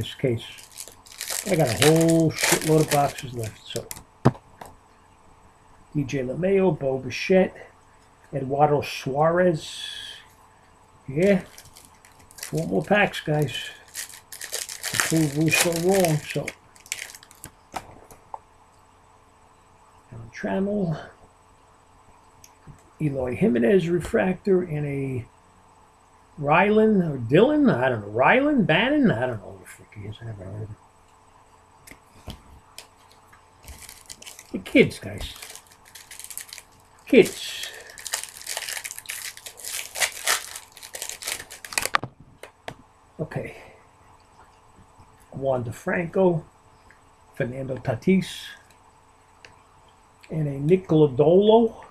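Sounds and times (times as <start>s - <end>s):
trading cards being handled: 0.0s - 4.8s, 11.2s - 18.0s, 31.9s - 42.1s
plastic wrapper crinkling: 0.4s - 4.0s, 11.2s - 17.5s, 32.2s - 42.0s.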